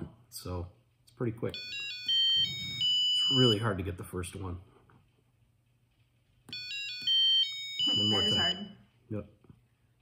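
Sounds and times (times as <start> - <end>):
short electronic beeps: 7.8 - 8.8.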